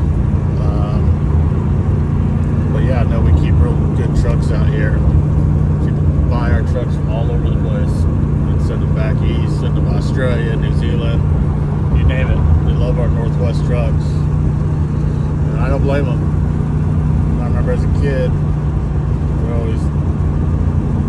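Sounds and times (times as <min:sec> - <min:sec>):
truck engine and road drone: 0:00.0 - 0:21.0.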